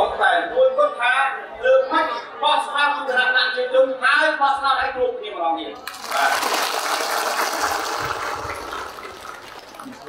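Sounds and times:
audience applause: 5.8 - 10.0.

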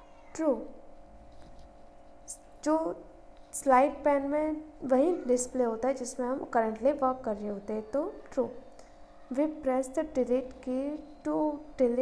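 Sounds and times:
faint steady hum: 0.0 - 12.0
woman speaking: 2.3 - 3.0, 3.6 - 8.6, 9.3 - 12.0.

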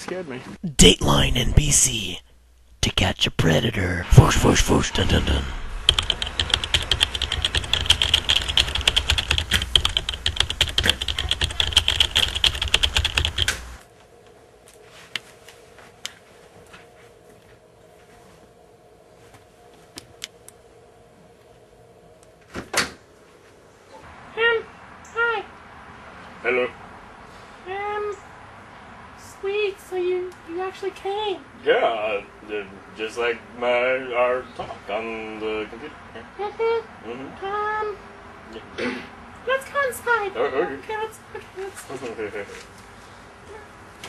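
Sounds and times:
computer keyboard typing: 5.8 - 13.8.

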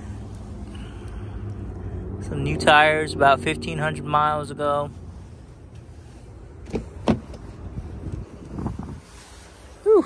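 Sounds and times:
steady low rumble: 0.0 - 9.9.

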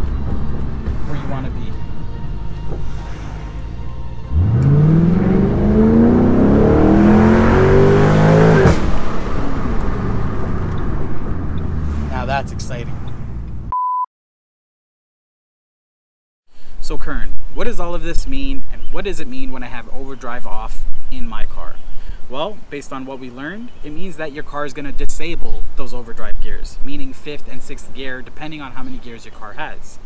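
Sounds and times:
car engine revving: 0.0 - 13.7
short beep: 13.7 - 14.1.

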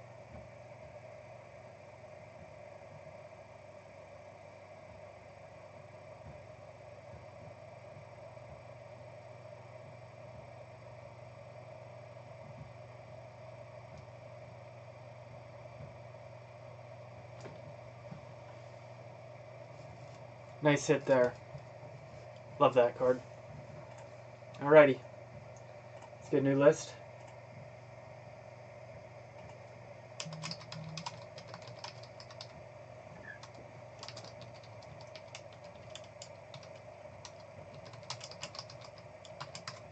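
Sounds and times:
faint steady hum: 0.0 - 39.9.

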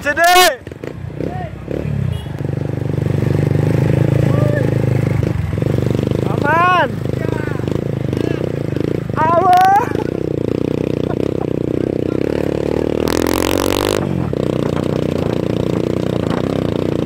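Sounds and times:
motorcycle engine running: 0.7 - 17.0.

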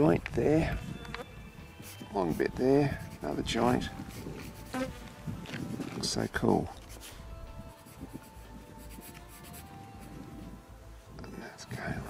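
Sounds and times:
flies buzzing: 0.8 - 2.1, 2.9 - 6.0.

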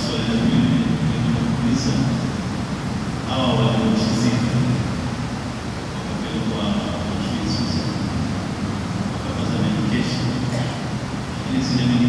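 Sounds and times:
man speaking into a microphone: 0.0 - 2.5, 3.1 - 5.0, 5.9 - 8.1, 9.1 - 12.0
steady background hiss: 0.0 - 12.0.

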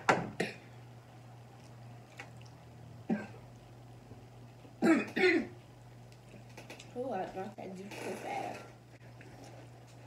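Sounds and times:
person clearing throat: 3.1 - 3.4, 4.8 - 5.6.

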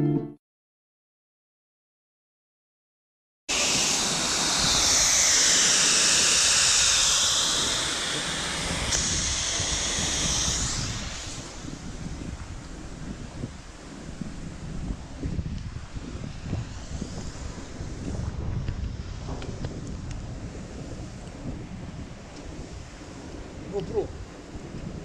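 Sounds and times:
fire hose water jet hissing: 3.5 - 25.0
wind on microphone: 3.5 - 25.0.

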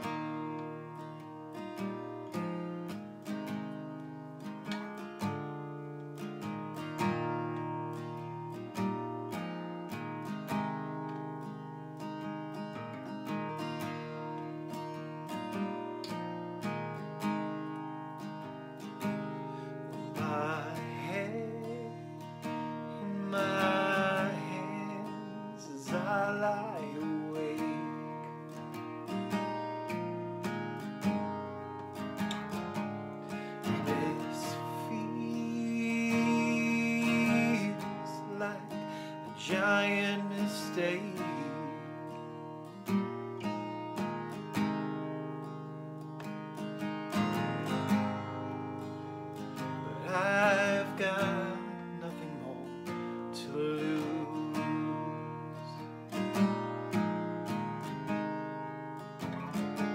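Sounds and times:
acoustic guitar strumming: 0.0 - 59.9
man singing: 19.9 - 28.4, 33.6 - 42.4, 49.6 - 56.1.

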